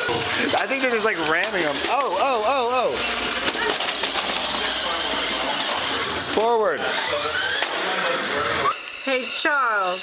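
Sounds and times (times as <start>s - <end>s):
toy car electric motors whining: 0.0s - 10.0s.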